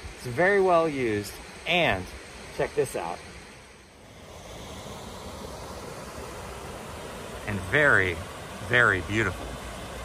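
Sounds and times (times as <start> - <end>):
creek flowing over rocks: 0.0 - 10.0.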